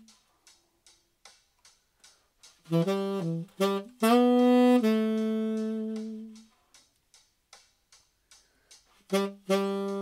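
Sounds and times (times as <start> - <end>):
drum machine beat: 0.0 - 10.0.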